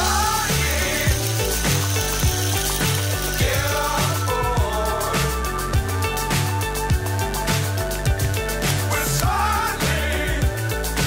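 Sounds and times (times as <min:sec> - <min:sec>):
small motor gear whir: 0:00.0 - 0:04.4
pop music with kick drum: 0:00.0 - 0:11.0.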